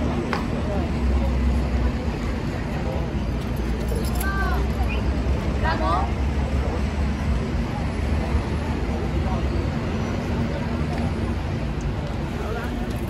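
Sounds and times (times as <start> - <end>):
low rumble of city traffic: 0.0 - 13.0.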